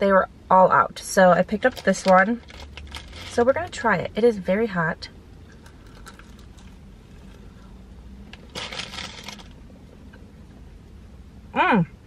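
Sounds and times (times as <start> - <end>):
car interior hum: 0.0 - 12.0.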